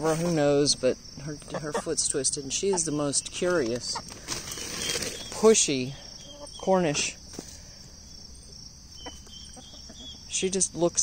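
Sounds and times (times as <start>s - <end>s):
insect chorus trilling: 0.0s - 11.0s.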